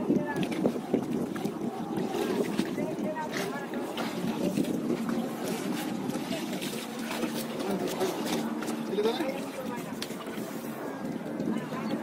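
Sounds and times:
water splashing and sloshing: 0.0s - 12.0s
men talking: 3.4s - 10.4s.

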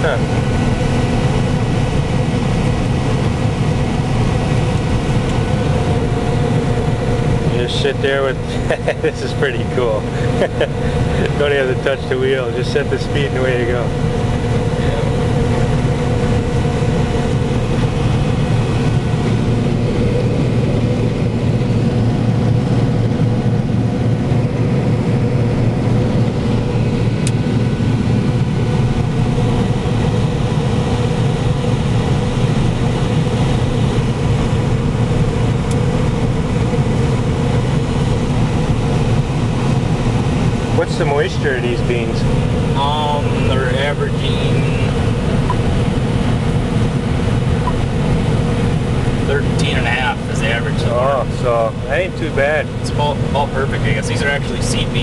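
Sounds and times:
combine harvester engine drone: 0.0s - 55.0s.

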